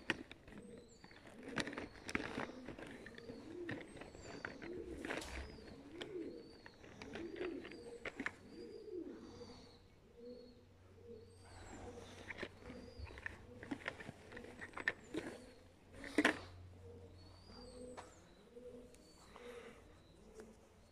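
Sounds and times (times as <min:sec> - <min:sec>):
pigeons cooing: 0:00.0 - 0:20.9.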